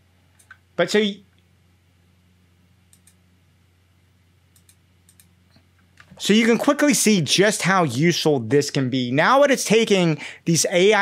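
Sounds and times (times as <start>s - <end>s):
low steady hum: 0.0s - 11.0s
computer clicks: 0.4s - 0.6s, 2.9s - 3.2s, 4.5s - 6.1s.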